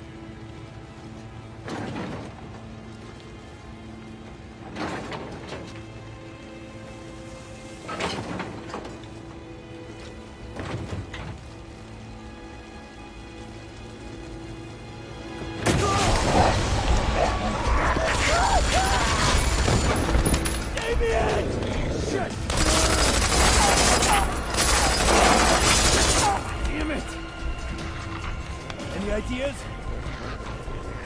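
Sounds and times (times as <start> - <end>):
tense orchestral score: 0.0 - 31.0
rumbling and crashing: 15.6 - 31.0.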